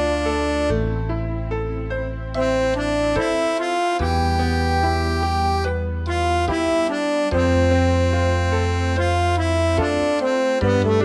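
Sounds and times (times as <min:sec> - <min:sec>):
tremolo harmonica melody: 0:00.0 - 0:01.3, 0:02.3 - 0:11.0
backing accompaniment: 0:02.3 - 0:11.0.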